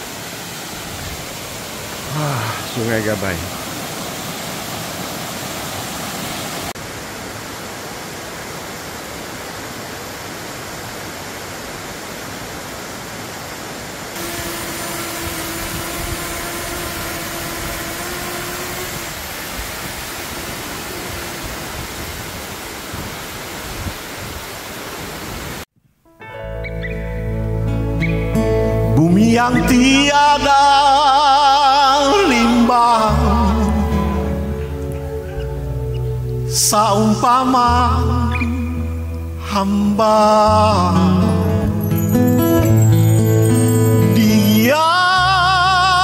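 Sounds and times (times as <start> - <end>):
waterfall rushing over rock: 0.0 - 25.7, 29.5 - 35.2
drone propeller whine: 14.2 - 22.9
music: 26.1 - 46.0.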